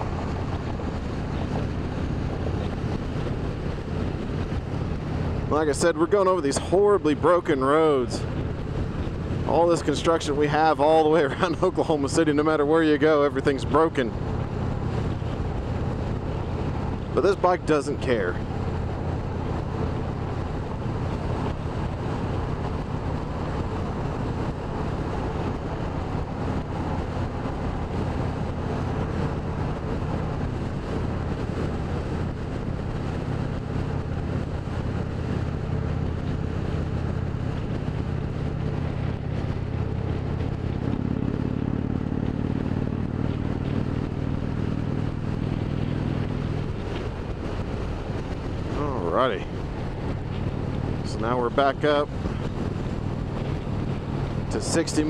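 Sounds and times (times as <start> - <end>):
wind rushing over camera: 0.0 - 55.0
motorcycle engine running: 18.0 - 55.0.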